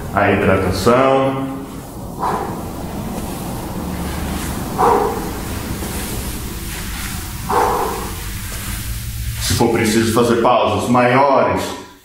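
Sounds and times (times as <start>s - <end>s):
man exhaling with effort: 1.7s - 8.9s.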